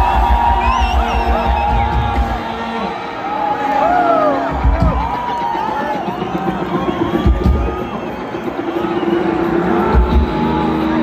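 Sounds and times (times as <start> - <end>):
crowd noise: 0.0 - 11.0
live band music over loudspeakers: 0.0 - 11.0.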